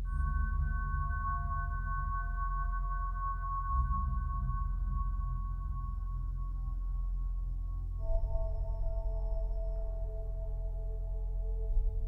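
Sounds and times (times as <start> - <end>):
sustained low drone: 0.0 - 12.0.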